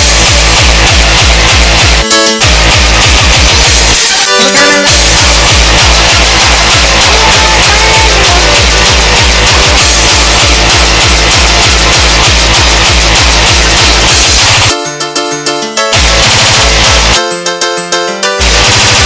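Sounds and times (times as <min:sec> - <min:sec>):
electronic dance music: 0:00.0 - 0:14.9, 0:15.8 - 0:19.0.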